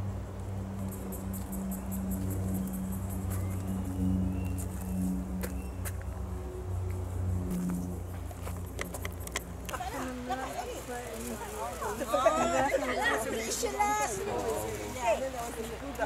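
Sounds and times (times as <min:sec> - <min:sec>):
music with low bass notes: 0:00.0 - 0:09.7.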